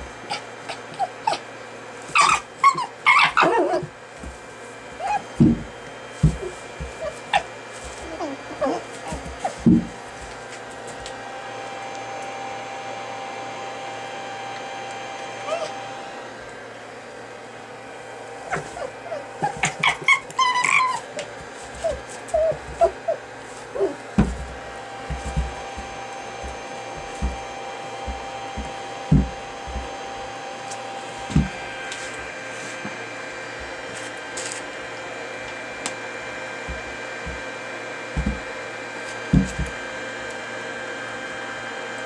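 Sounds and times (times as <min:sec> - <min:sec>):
electrical hum: 0:00.0 - 0:42.0
fox squeaking: 0:00.3 - 0:01.4, 0:02.1 - 0:03.9, 0:05.0 - 0:05.5, 0:18.5 - 0:21.2, 0:21.8 - 0:23.2
rustling and soft thuds: 0:03.8 - 0:11.1, 0:21.4 - 0:30.0, 0:31.2 - 0:33.0, 0:36.6 - 0:38.6, 0:39.2 - 0:39.8.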